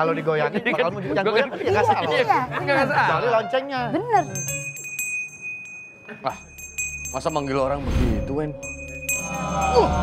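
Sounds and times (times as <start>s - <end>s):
handheld bell ringing: 4.1s - 10.0s.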